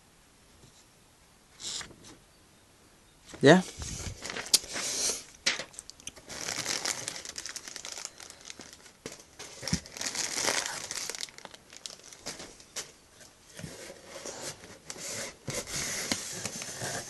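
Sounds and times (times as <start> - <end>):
cardboard flaps rustling: 3.4 - 4.8
plastic packaging crinkling: 3.9 - 12.9.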